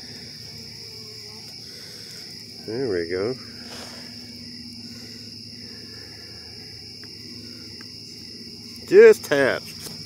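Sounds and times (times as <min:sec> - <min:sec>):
crickets chirring: 0:00.0 - 0:10.0
faint low hum: 0:00.0 - 0:10.0.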